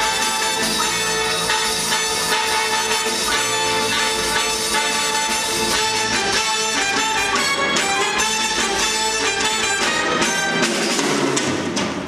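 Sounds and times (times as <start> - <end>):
band playing upbeat dance music: 0.0 - 11.4.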